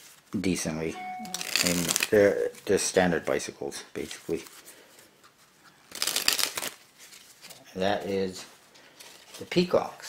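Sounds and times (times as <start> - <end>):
playing cards being shuffled: 1.2 - 2.6, 5.9 - 7.2.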